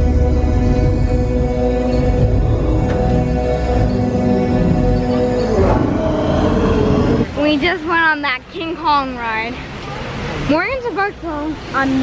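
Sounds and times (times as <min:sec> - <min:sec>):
ominous held music chords: 0:00.0 - 0:07.4
loud rough roar: 0:02.3 - 0:07.4.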